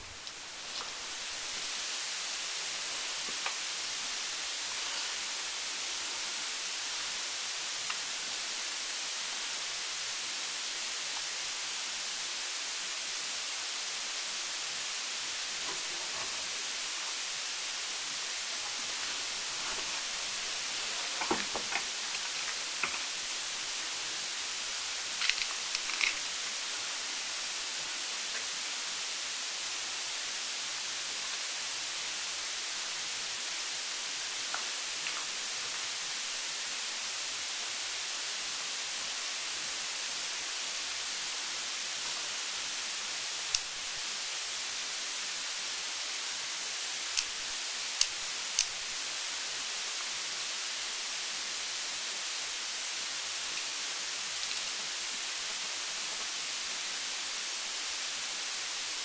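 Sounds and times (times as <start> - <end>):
steady high hiss: 0.0 - 59.0.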